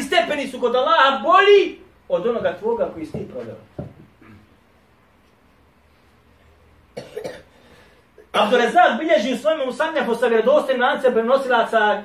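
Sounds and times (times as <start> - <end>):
person coughing: 4.2 - 4.5, 7.0 - 7.6.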